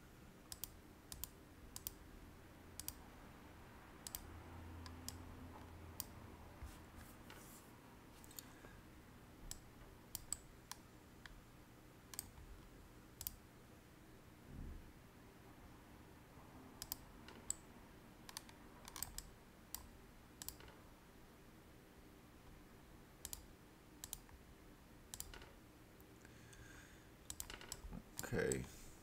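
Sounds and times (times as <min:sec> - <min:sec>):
computer mouse and keyboard clicks: 0:04.0 - 0:06.2, 0:16.8 - 0:17.6, 0:18.3 - 0:20.8, 0:25.1 - 0:25.5, 0:27.3 - 0:28.7.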